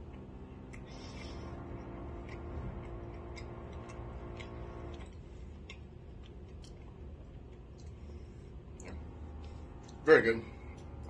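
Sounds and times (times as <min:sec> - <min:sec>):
person chewing: 0:00.0 - 0:10.0
faint steady hum: 0:00.0 - 0:11.0.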